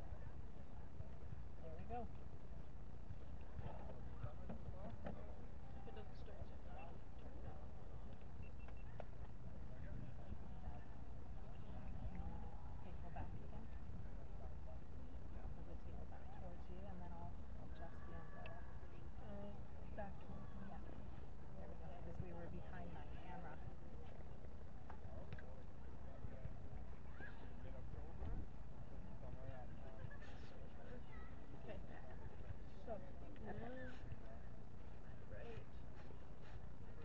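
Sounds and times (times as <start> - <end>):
faint distant voices: 0.0 - 37.0.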